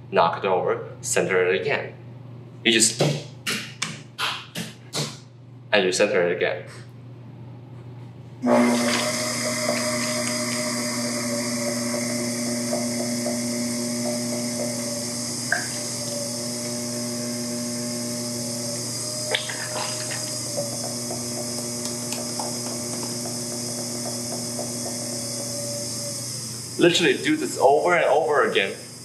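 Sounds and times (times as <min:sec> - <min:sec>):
pottery wheel motor whine: 0:08.4 - 0:29.0.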